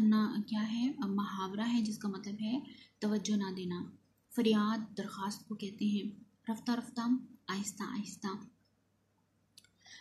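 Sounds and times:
woman speaking: 0.0s - 8.6s.

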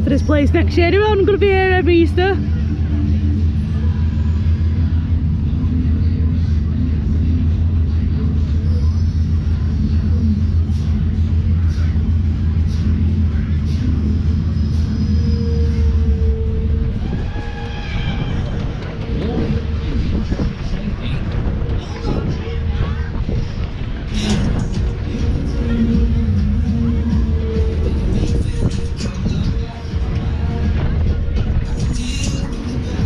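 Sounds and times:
faint fairground music: 0.0s - 33.0s
fairground ride rumbling: 0.0s - 33.0s.

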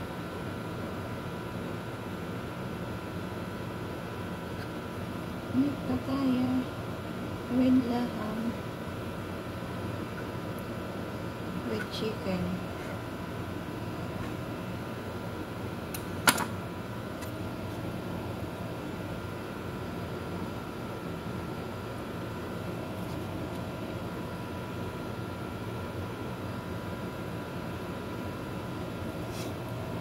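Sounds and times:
mechanical hum with high whine: 0.0s - 30.0s.

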